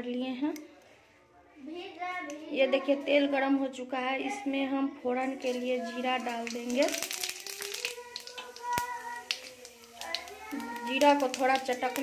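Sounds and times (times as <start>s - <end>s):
seeds sizzling in hot oil: 5.2s - 12.0s.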